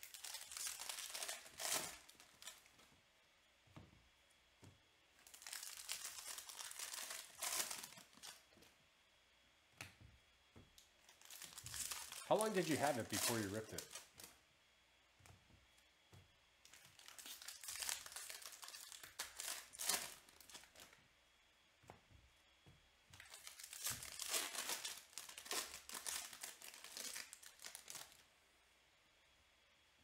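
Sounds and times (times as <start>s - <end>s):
cards rustling and clicking: 5.2s - 8.7s, 11.0s - 14.3s.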